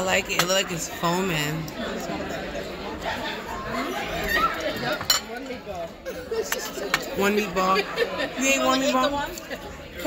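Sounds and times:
people talking and laughing: 0:00.0 - 0:10.0
tableware clinking: 0:00.2 - 0:00.8, 0:04.8 - 0:05.6.

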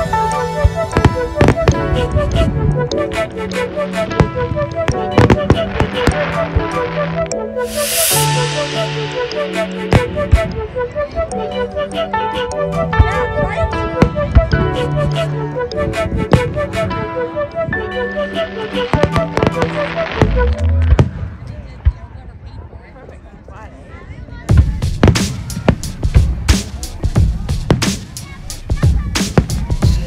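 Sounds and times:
music playing melody: 0:00.0 - 0:21.4, 0:24.6 - 0:30.0
fireworks hissing crackle: 0:07.6 - 0:10.2.

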